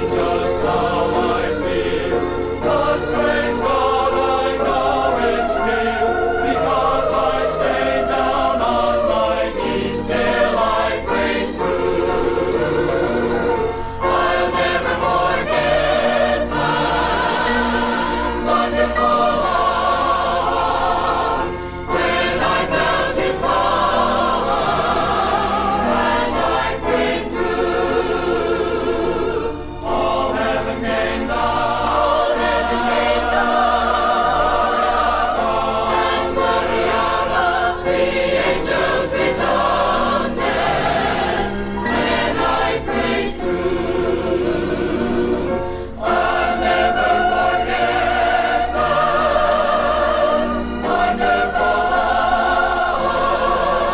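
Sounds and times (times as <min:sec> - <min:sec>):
choir singing gospel: 0:00.0 - 0:53.9.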